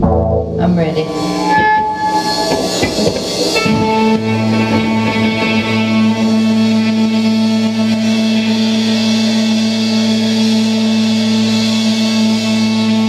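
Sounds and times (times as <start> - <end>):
rock band droning chord: 0.0 - 13.0.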